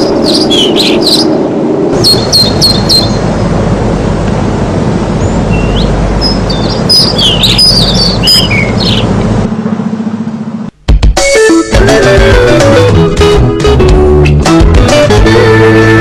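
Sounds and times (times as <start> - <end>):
small birds chirping: 0.0 - 1.4, 2.0 - 3.5, 5.2 - 9.4
low rumble: 0.0 - 10.8.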